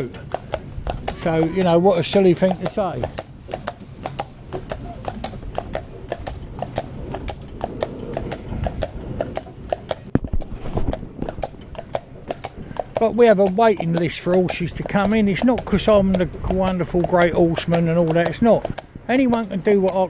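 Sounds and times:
horse hooves clip-clopping on road: 0:00.0 - 0:20.0.

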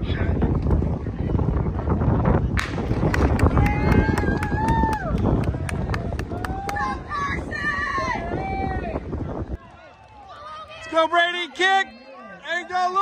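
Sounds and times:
wind rumble on microphone: 0:00.0 - 0:09.7.

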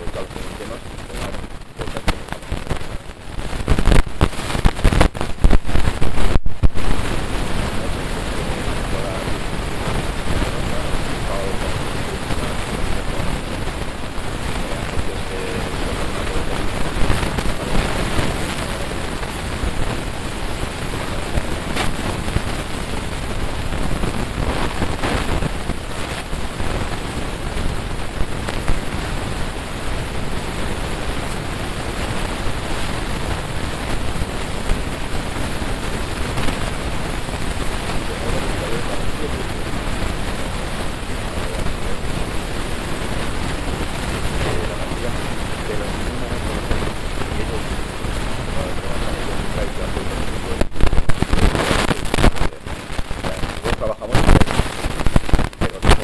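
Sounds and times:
loud static rushing noise: 0:00.0 - 0:56.0.

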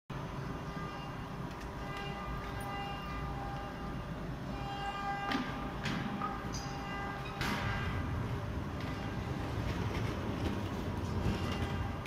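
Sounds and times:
workshop machinery low rumble: 0:00.1 - 0:12.0.

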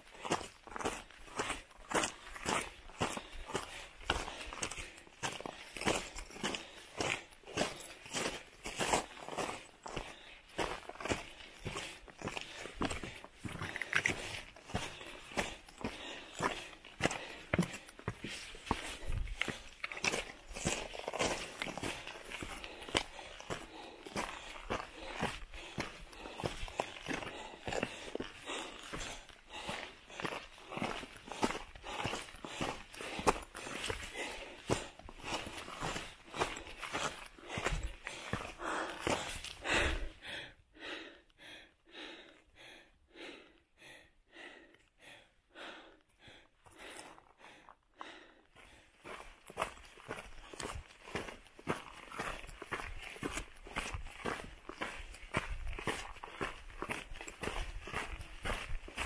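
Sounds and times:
footsteps crunching on rocky trail: 0:00.0 - 0:41.0, 0:45.6 - 0:59.0.

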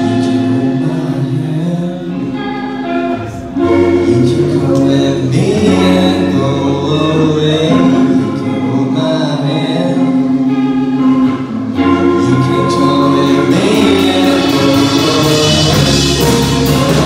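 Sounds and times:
electric guitars and bass: 0:00.0 - 0:17.0
voices singing in harmony: 0:12.0 - 0:17.0.

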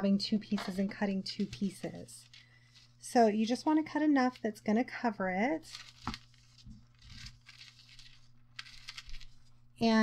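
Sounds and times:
foil crinkling: 0:05.6 - 0:09.6.

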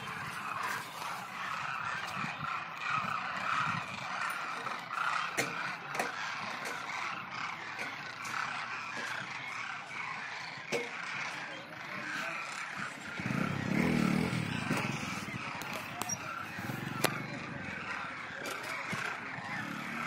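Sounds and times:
flock of cranes calling: 0:00.0 - 0:20.0.

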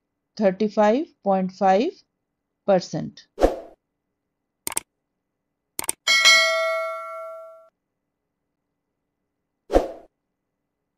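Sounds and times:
quick double click: 0:05.8 - 0:06.0
bell ding: 0:06.1 - 0:07.7.

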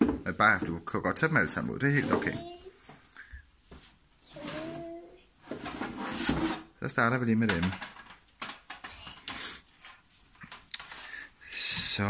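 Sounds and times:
placemats rustling and tapping: 0:01.6 - 0:06.6, 0:07.4 - 0:11.2.

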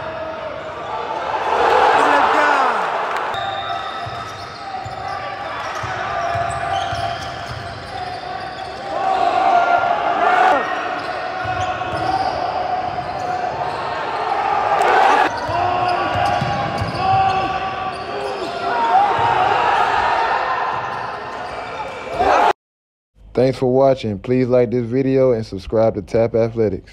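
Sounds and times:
people shouting: 0:00.0 - 0:03.1, 0:08.9 - 0:12.7, 0:14.2 - 0:20.8, 0:22.1 - 0:22.5
shoe squeaks: 0:03.3 - 0:09.2, 0:10.6 - 0:14.0, 0:15.3 - 0:18.6
basketball bouncing on court: 0:04.0 - 0:08.1, 0:15.3 - 0:18.0.

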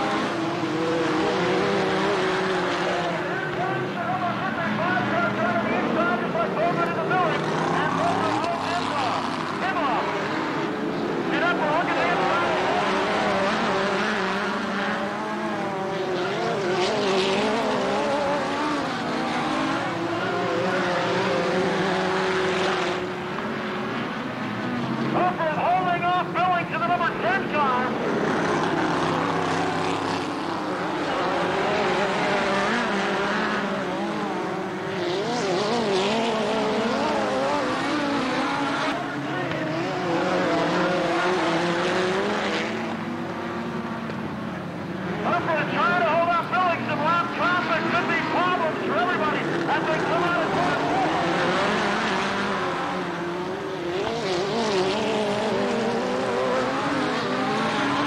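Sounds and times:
race car engines: 0:00.0 - 0:58.0.

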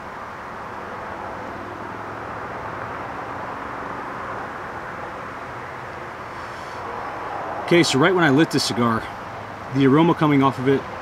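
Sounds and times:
distant engine rumble: 0:00.0 - 0:11.0.

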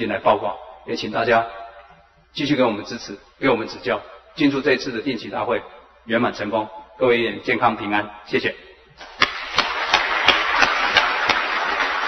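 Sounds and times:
crowd applauding: 0:09.0 - 0:12.0
single loud claps: 0:09.0 - 0:12.0.

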